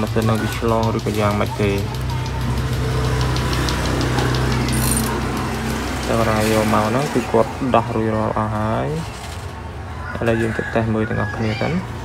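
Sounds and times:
faint regular ticking: 0.0s - 6.0s.

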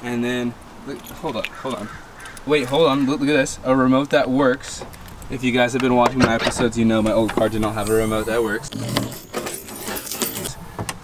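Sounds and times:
keys jangling: 8.7s - 10.6s.

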